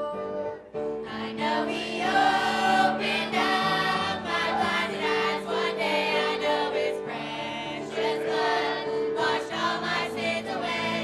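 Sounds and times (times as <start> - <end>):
choir singing gospel song: 1.0 - 11.0.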